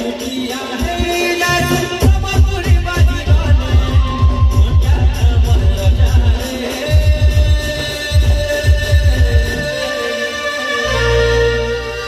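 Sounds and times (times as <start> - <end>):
rapid low drum beats: 0.0 - 9.8.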